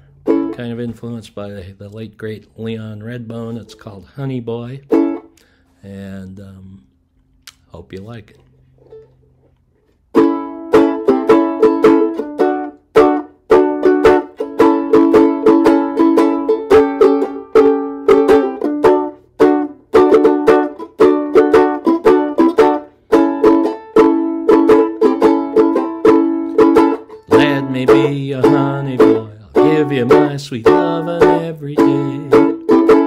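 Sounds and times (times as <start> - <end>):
banjo ukulele strumming: 0.0 - 1.2, 4.6 - 5.3, 10.1 - 33.0.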